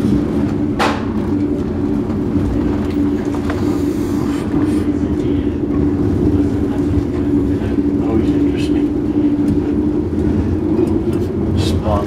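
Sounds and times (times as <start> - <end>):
constant hum: 0.0 - 12.0
train rumble: 0.0 - 12.0.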